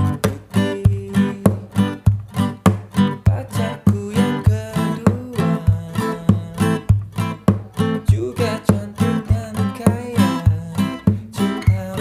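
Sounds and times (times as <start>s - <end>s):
acoustic guitar strummed reggae rhythm: 0.0s - 12.0s.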